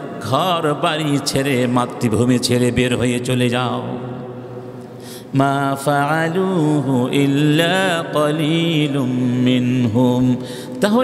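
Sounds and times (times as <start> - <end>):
man chanting melodic recitation: 0.0 - 4.6, 5.2 - 11.0.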